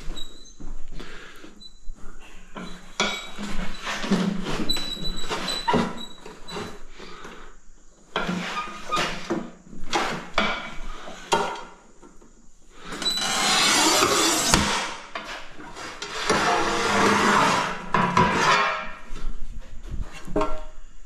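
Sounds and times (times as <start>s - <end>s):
tile cutter scraping across tile: 13.0s - 19.0s.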